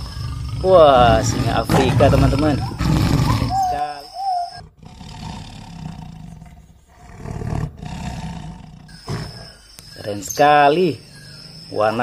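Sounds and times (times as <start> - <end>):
lion roaring: 0.0 - 9.6.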